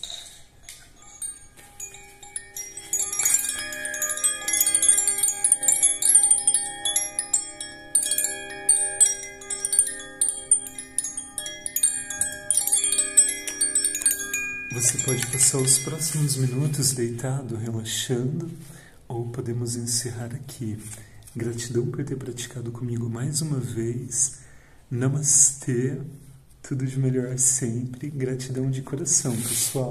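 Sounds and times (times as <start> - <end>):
wind chime tinkling: 0.0 - 17.7.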